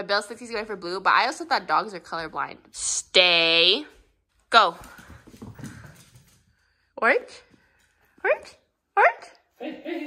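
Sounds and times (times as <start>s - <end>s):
puppy paws tapping on wood floor: 3.8s - 6.7s.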